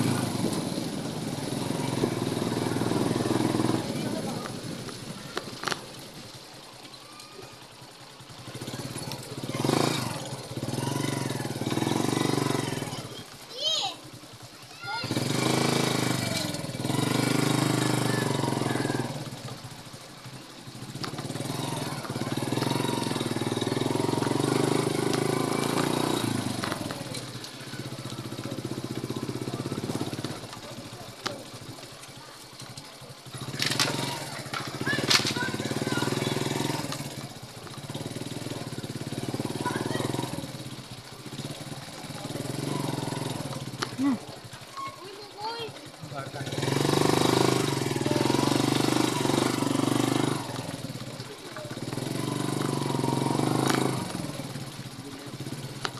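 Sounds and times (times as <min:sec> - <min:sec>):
motorcycle engine revving: 0:00.0 - 0:06.8, 0:07.4 - 0:55.9.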